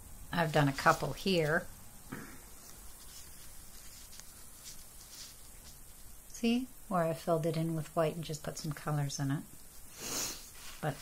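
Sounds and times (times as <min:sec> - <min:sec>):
gloved hand rubbing: 0:02.5 - 0:06.2.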